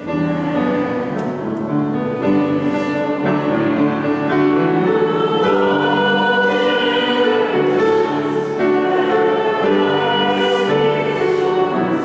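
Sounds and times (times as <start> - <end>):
choir singing a slow hymn: 0.0 - 12.0.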